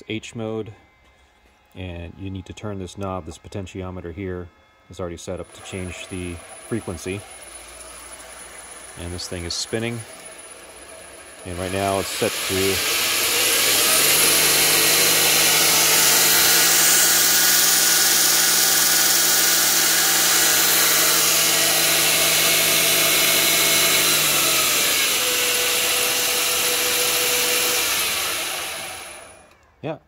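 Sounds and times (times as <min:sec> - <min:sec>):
belt grinder motor whirring: 0:00.4 - 0:29.8.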